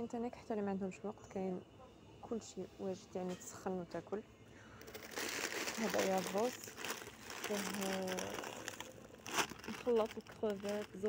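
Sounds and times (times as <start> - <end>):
woman speaking: 0.0 - 1.6, 2.2 - 4.2, 5.7 - 6.8, 7.4 - 8.7, 9.6 - 11.0
plastic packaging crinkling: 4.8 - 11.0.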